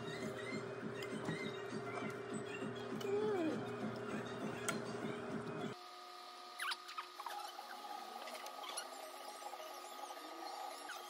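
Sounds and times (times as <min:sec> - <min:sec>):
high squeaky chirps: 0:06.6 - 0:07.8.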